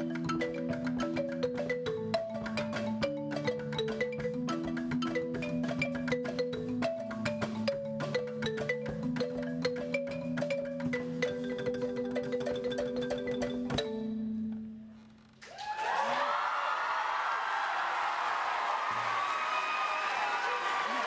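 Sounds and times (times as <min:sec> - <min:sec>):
marimba ensemble playing: 0:00.0 - 0:14.9
percussion: 0:00.0 - 0:21.0.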